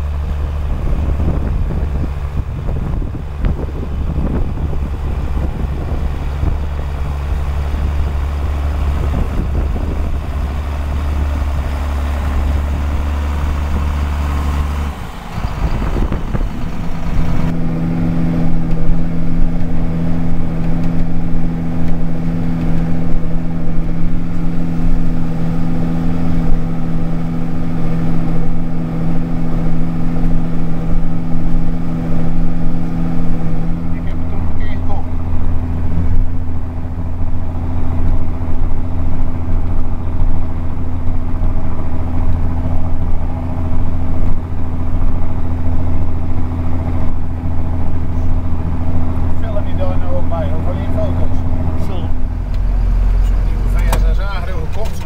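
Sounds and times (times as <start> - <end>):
tractor diesel engine running: 0.0 - 55.0.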